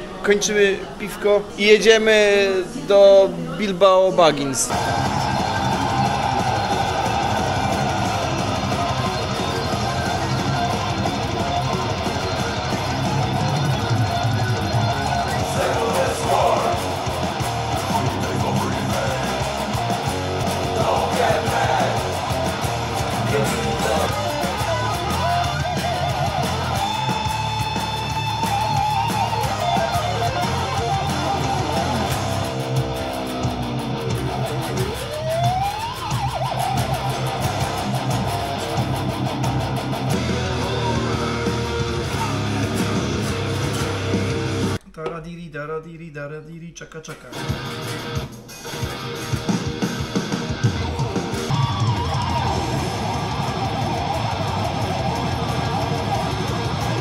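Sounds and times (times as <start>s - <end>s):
heavy metal electric guitars: 4.7s - 44.8s, 47.3s - 57.0s.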